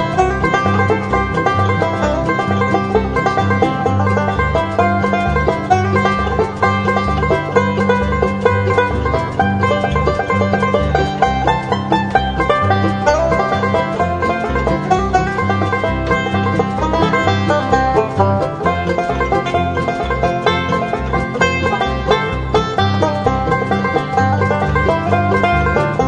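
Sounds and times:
banjo picking: 0.0 - 26.0
bouncing bass line: 0.0 - 26.0
rhythm backing: 0.0 - 26.0.

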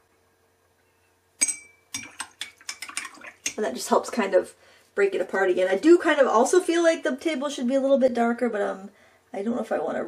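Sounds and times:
paintbrush clinking glass jar: 1.4 - 3.0.

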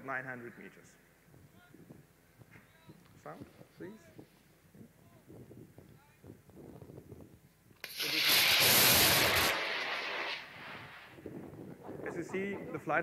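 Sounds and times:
rocket motor rushing hiss: 7.8 - 11.3.

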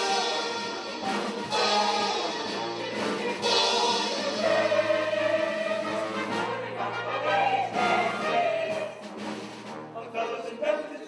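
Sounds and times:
choir singing: 0.0 - 9.1
pit orchestra playing: 0.0 - 11.0.

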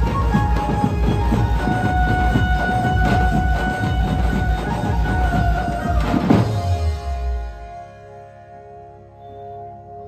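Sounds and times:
loud dense drumming: 0.0 - 6.8.

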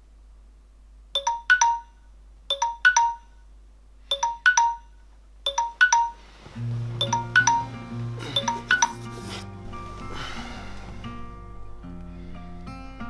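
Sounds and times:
phone alarm chiming notes: 1.2 - 3.4, 4.1 - 9.1
music with low bass: 6.6 - 13.0.

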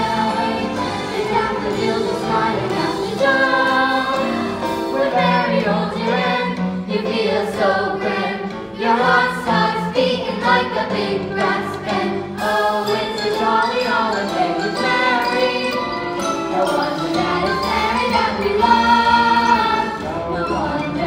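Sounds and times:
cast singing chorus: 0.0 - 21.0
musical accompaniment: 0.0 - 21.0.

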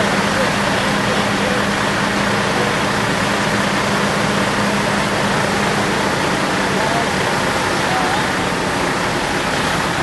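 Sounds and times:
fire engine pumps rushing: 0.0 - 10.0.

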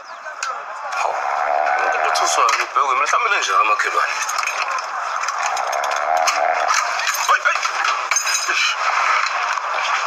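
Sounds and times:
clinks and rattles of objects: 3.4 - 10.0.

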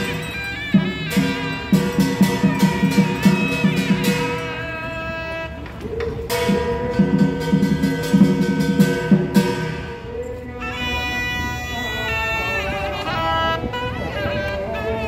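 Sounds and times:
sharp percussion strikes: 0.0 - 5.2, 6.2 - 10.2
double-reed horn melody: 0.0 - 15.0.

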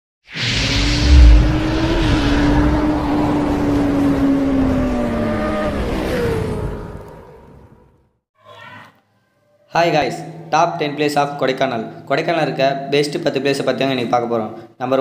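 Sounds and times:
deep boom: 0.8 - 3.1.

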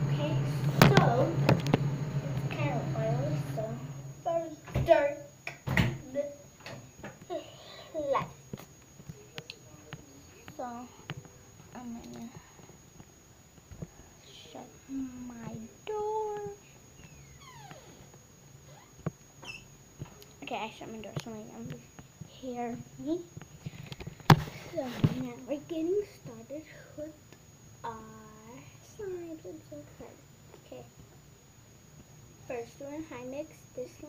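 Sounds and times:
girl talking indistinctly: 0.0 - 1.4, 2.5 - 5.4, 7.3 - 8.4, 9.7 - 11.0, 11.7 - 12.5, 14.2 - 16.7, 20.4 - 23.3, 24.6 - 27.2, 27.8 - 30.9, 32.4 - 34.0
steady low hum: 0.0 - 34.0.

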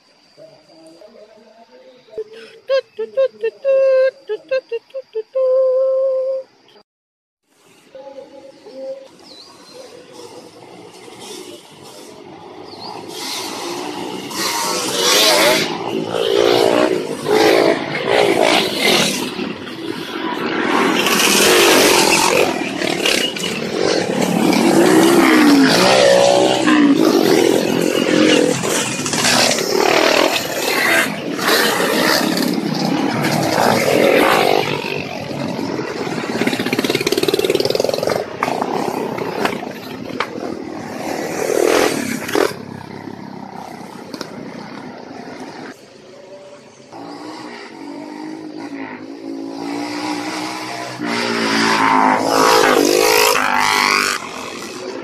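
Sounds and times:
motorcycles revving past: 8.1 - 55.0.

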